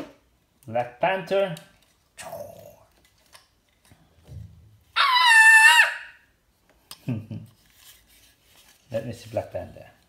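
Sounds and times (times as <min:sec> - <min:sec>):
child's high-pitched squeal: 0:05.0 - 0:06.2.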